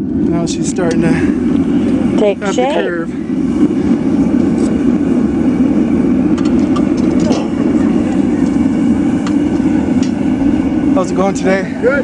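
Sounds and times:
gas forge burner rushing: 0.0 - 12.0.

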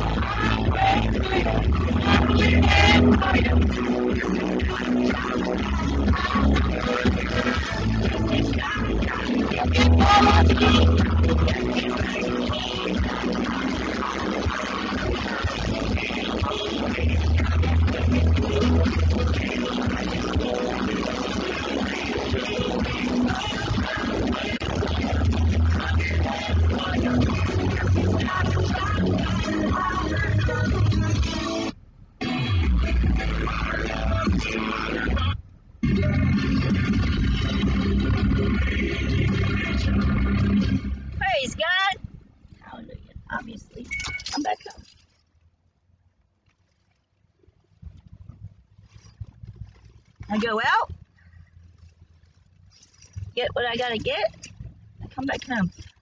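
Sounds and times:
music from car stereo: 0.0 - 44.6, 48.0 - 56.0.

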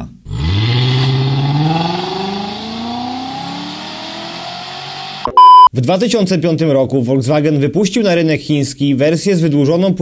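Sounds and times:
car engine accelerating: 0.3 - 5.3.

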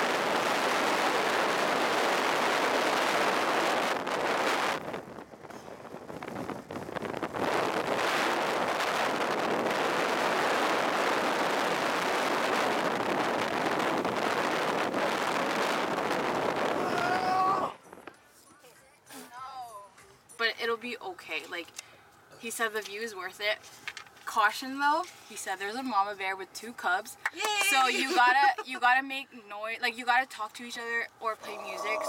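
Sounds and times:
wind rushing over microphone: 0.0 - 18.1.

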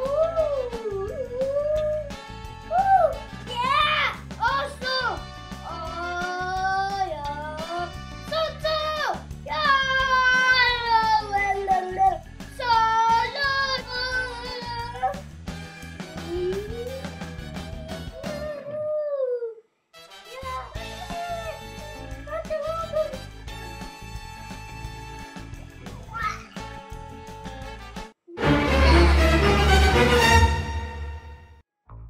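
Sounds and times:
child crying out: 0.0 - 2.1, 9.0 - 15.2, 16.0 - 19.6, 26.1 - 26.5
background music with steady beat: 0.0 - 18.5, 20.0 - 31.6.

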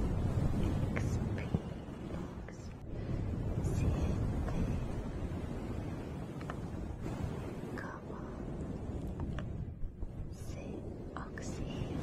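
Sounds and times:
steady low rumble: 0.0 - 12.0
woman whispering: 0.6 - 2.8, 3.5 - 5.0, 7.8 - 8.5, 10.3 - 12.0.

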